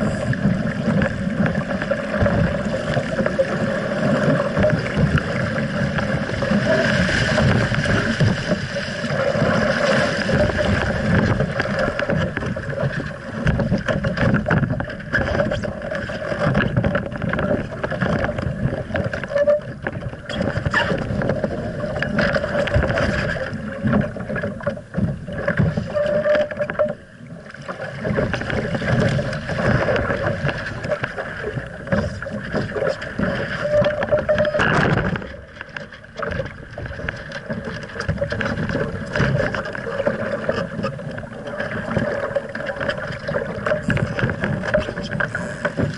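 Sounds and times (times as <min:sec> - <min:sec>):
water rushing along boat hull: 0:00.0 - 0:45.9.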